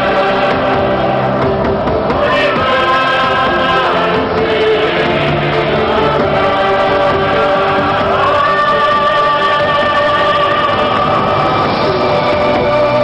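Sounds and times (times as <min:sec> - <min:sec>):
choir singing long held notes: 0:00.0 - 0:13.0.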